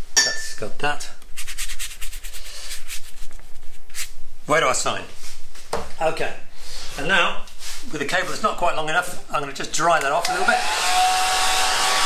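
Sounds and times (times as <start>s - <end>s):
paintbrush scrubbing on paper: 1.3s - 4.2s.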